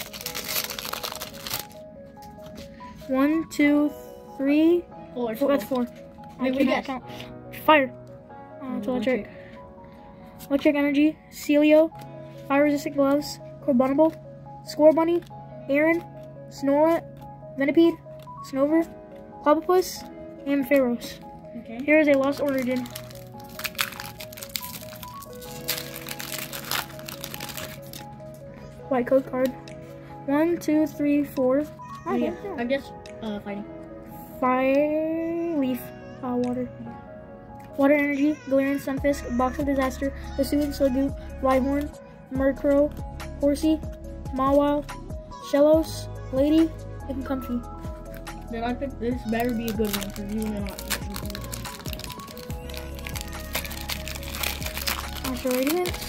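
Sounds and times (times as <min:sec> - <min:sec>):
foil wrapper crinkling: 0:00.0 - 0:02.6, 0:21.1 - 0:28.2, 0:49.2 - 0:56.0
background music: 0:00.0 - 0:56.0.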